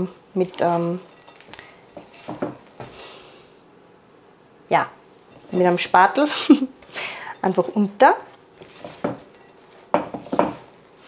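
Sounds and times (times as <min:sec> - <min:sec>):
spatula stirring mixture: 0:00.4 - 0:03.2, 0:05.2 - 0:06.2, 0:06.8 - 0:11.0
spatula scraping glass bowl: 0:00.5 - 0:03.1, 0:05.3 - 0:06.1, 0:08.6 - 0:10.9.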